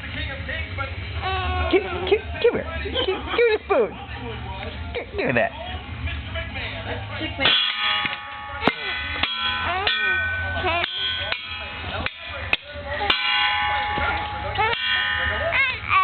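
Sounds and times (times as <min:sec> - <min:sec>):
toy drum struck with a stick: 0:07.4 - 0:16.0.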